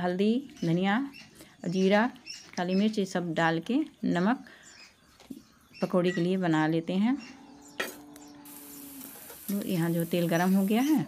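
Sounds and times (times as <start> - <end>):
food frying in hot oil: 8.5 - 11.0.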